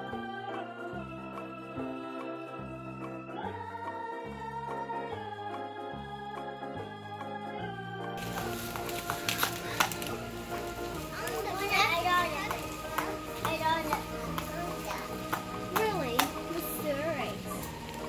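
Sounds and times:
background music: 0.0s - 18.0s
hammer tapping plastic stakes: 8.2s - 10.3s, 12.4s - 16.7s.

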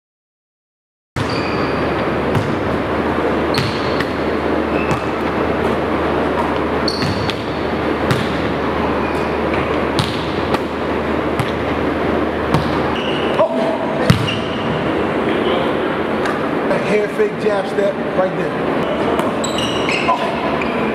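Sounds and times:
sneaker squeaks: 1.2s - 2.8s, 3.4s - 10.4s, 12.5s - 14.8s, 19.0s - 20.9s
balls bouncing on hardwood floor: 2.0s - 2.7s, 4.9s - 5.4s, 14.0s - 14.4s.

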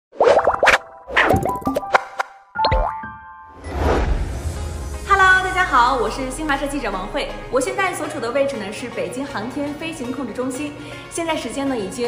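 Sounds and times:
playful cartoon music: 0.2s - 8.7s.

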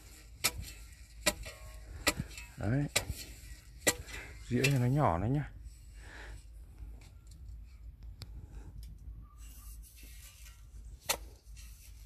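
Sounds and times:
spade chopping into soil: 0.0s - 4.9s, 11.0s - 11.4s.

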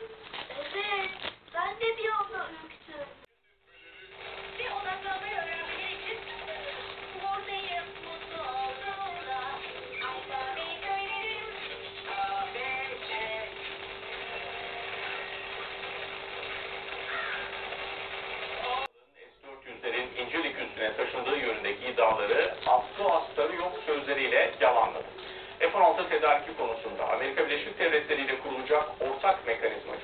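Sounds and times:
broadcast hiss: 0.0s - 30.0s
cartoon music with singing: 3.6s - 13.7s
man speaking on the news: 18.9s - 30.0s.

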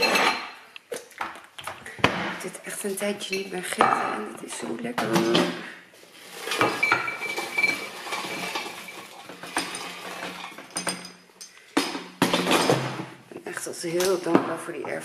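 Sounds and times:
plates and cutlery clinking: 0.0s - 1.4s, 2.9s - 13.1s.

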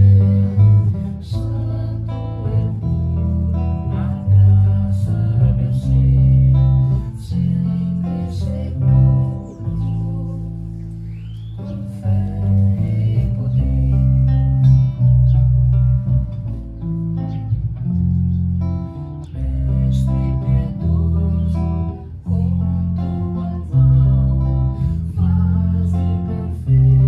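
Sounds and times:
electric bass guitar: 0.0s - 27.0s
guitar melody: 0.0s - 27.0s.

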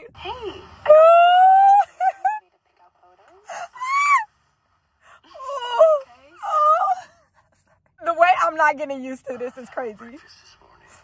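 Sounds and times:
woman squealing and wailing: 0.9s - 2.0s, 3.8s - 4.3s.

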